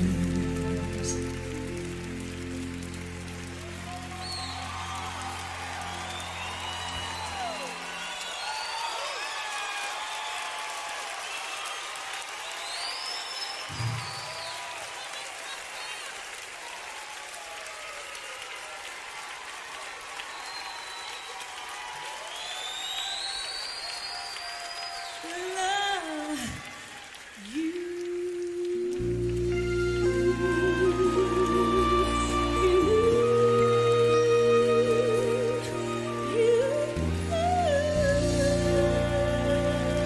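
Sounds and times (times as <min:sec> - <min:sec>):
audience applauding and cheering: 0:00.0 - 0:40.0
whistles from crowd: 0:03.9 - 0:16.1, 0:20.1 - 0:25.6.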